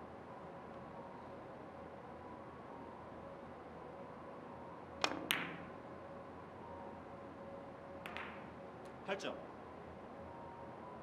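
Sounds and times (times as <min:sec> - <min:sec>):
cue striking ball click: 0:05.0 - 0:05.7, 0:08.0 - 0:08.5
billiard balls colliding: 0:05.1 - 0:05.7, 0:08.0 - 0:08.5.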